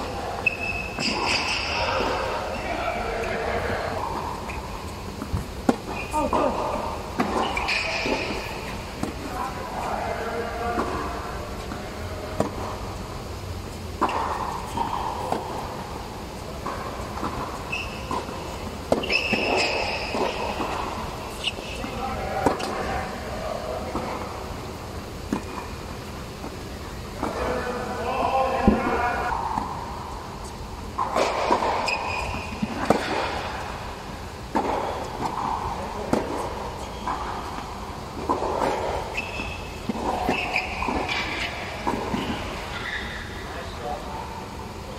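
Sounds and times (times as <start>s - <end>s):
people talking: 0.0s - 4.6s, 5.9s - 13.1s, 18.1s - 24.8s, 26.7s - 29.6s, 34.6s - 37.3s, 43.4s - 44.9s
tennis balls hit by rackets: 0.0s - 44.8s
steady low hum: 0.0s - 44.9s
balls bouncing on hard court: 0.1s - 13.2s, 13.8s - 43.4s.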